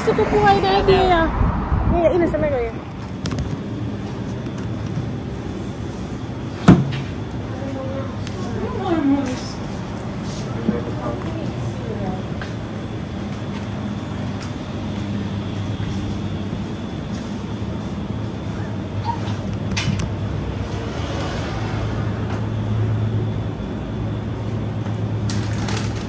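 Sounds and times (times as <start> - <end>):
refrigeration and ventilation hum: 0.0 - 26.0.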